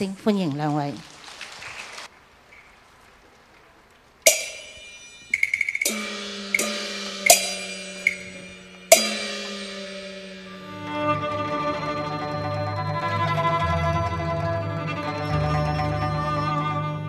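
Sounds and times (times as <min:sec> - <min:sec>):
sharp ringing strike: 0:04.3 - 0:13.0
gong and cymbal strikes: 0:04.3 - 0:14.0
percussion clacks: 0:04.3 - 0:16.0.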